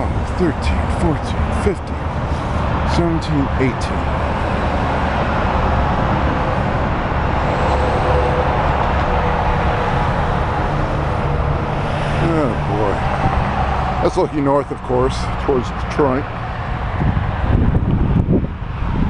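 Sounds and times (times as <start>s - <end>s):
busy road traffic rumble: 0.0s - 19.0s.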